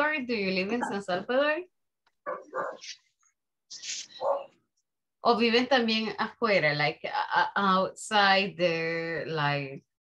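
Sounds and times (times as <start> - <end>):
dog barking: 2.2 - 3.0, 4.2 - 4.6.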